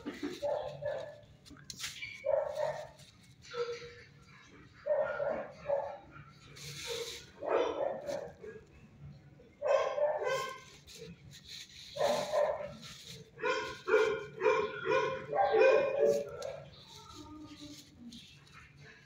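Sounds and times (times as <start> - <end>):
dogs barking: 0.0 - 1.4, 2.1 - 8.7, 9.6 - 11.2, 11.9 - 17.2.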